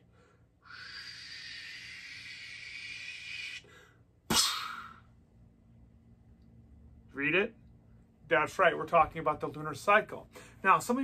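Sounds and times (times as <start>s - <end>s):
breathy hiss into cupped hands: 0.6s - 5.1s.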